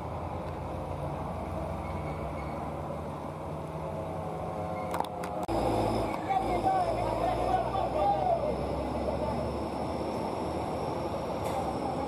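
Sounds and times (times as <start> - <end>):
diesel truck engine droning: 0.0 - 12.0.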